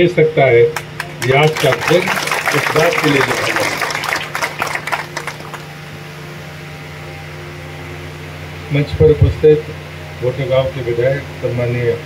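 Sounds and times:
mains hum: 0.0s - 12.0s.

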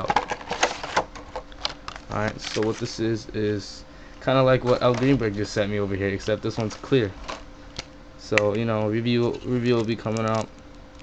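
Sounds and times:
plastic packaging crinkling: 0.0s - 3.0s, 8.5s - 11.0s.

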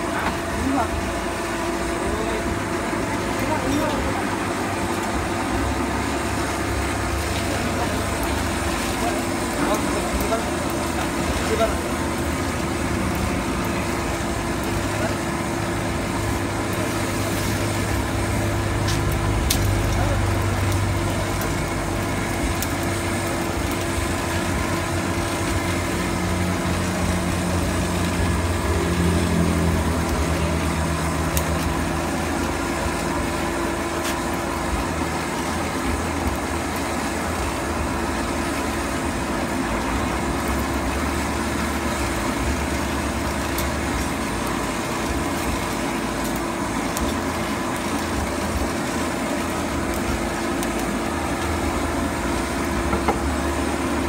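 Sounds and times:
air blower motor hum: 0.0s - 54.0s.

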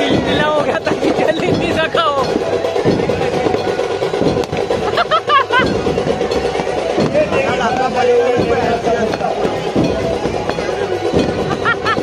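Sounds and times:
crowd voices: 0.0s - 12.0s
firecrackers crackling and popping: 0.0s - 12.0s
music: 0.0s - 12.0s.

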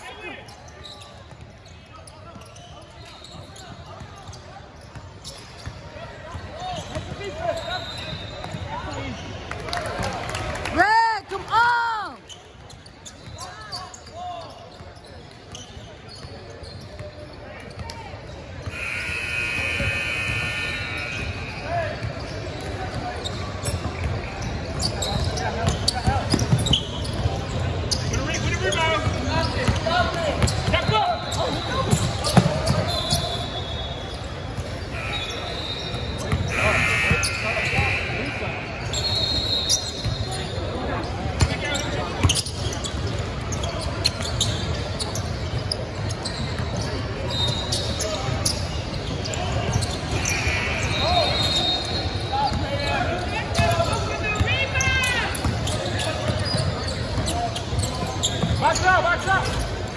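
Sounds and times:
sneaker squeaks: 0.0s - 9.4s, 12.2s - 59.9s
voices in a gym: 0.0s - 59.9s.

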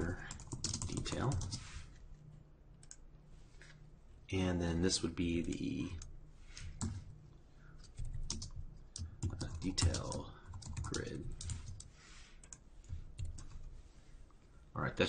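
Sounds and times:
typing on computer keyboard: 0.1s - 1.6s, 7.8s - 12.6s.

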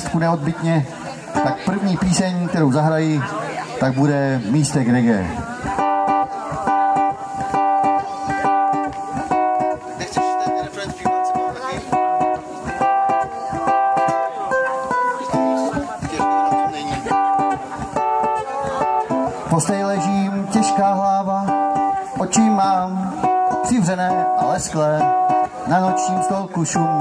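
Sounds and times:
ukulele strumming: 0.0s - 3.3s, 5.2s - 27.0s.

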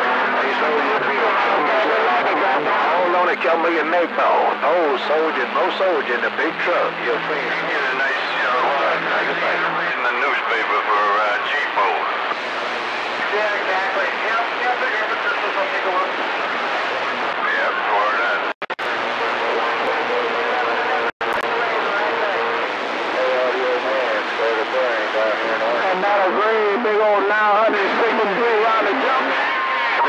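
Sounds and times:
radio static hiss: 0.0s - 30.0s
garbled distant voices: 19.0s - 30.0s.

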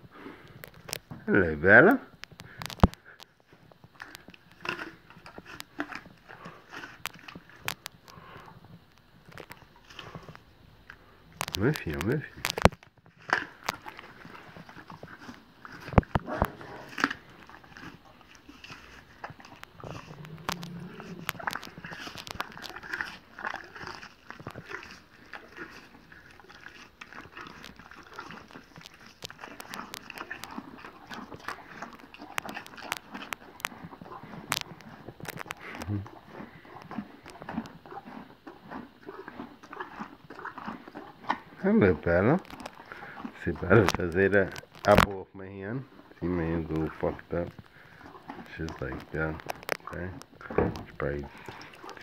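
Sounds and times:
pony crunching an apple: 0.2s - 52.0s
person murmuring: 35.6s - 36.1s.

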